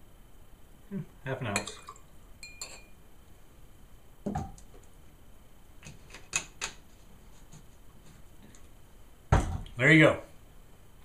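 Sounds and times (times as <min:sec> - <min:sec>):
metal jigger clinking on glass: 0:01.6 - 0:02.9.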